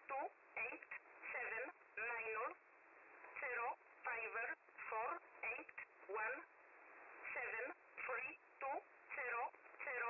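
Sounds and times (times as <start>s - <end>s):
voice reading digits over radio: 3.4s - 6.4s.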